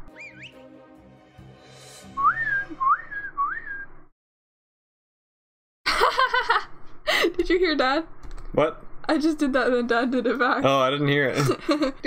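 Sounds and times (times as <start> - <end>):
person whistling sliding notes: 0.0 - 0.8, 2.0 - 3.9.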